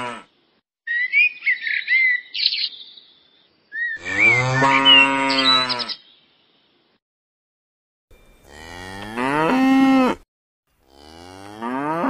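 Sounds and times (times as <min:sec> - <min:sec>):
birds chirping: 0:00.9 - 0:06.9
cattle mooing: 0:04.0 - 0:05.9, 0:08.4 - 0:10.2, 0:10.8 - 0:12.0.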